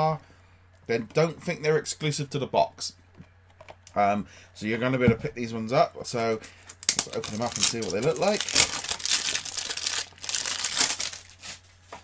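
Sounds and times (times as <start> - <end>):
packaging crinkling: 6.7 - 11.9.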